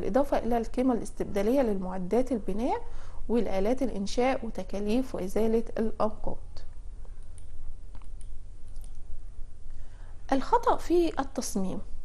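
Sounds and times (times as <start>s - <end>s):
low hum: 4.5s - 12.0s.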